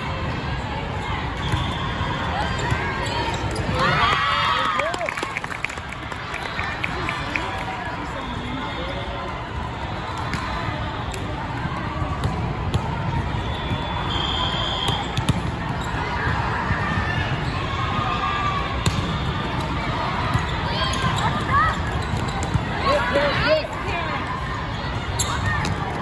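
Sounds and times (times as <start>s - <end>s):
volleyballs hit and bouncing: 10.2s - 13.8s, 14.8s - 23.2s, 25.0s - 26.0s
short high whistle tone: 13.5s - 15.0s.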